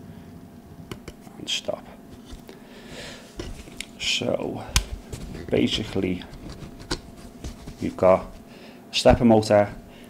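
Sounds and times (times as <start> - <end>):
faint rustle of hands: 4.9 - 8.5.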